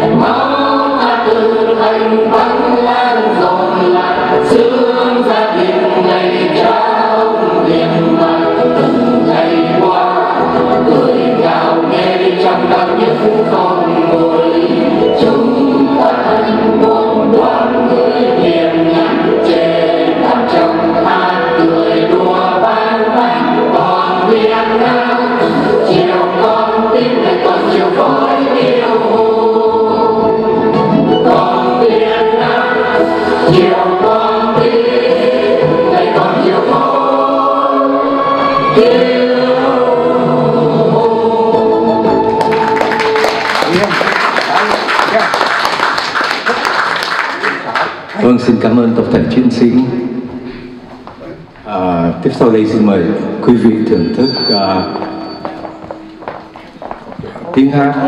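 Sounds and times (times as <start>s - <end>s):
mixed choir singing: 0.0s - 45.0s.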